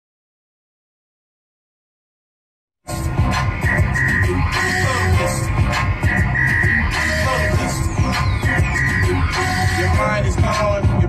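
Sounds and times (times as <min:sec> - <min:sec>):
high falling synth sweep: 0:02.9 - 0:10.2
electronic music with heavy bass: 0:02.9 - 0:11.0.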